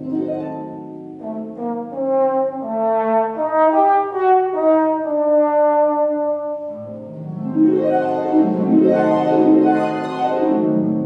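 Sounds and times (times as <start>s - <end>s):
trombone playing slow melody: 1.0s - 11.0s.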